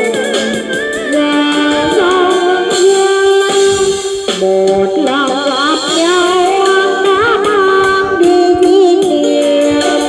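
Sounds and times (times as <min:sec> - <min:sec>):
instrumental backing track: 0:00.0 - 0:10.0
person singing karaoke: 0:00.0 - 0:10.0.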